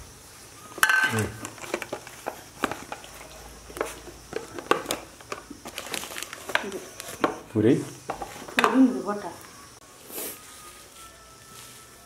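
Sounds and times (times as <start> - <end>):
plastic bag crinkling: 4.4 - 7.2.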